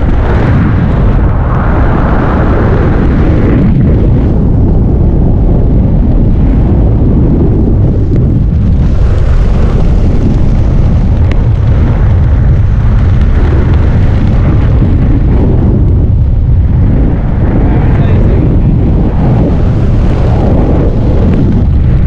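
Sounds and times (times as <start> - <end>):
wind buffeting microphone: 0.0 - 22.0.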